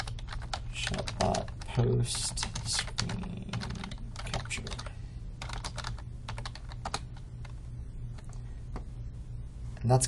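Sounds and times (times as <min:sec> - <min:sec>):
typing on computer keyboard: 0:00.0 - 0:07.6.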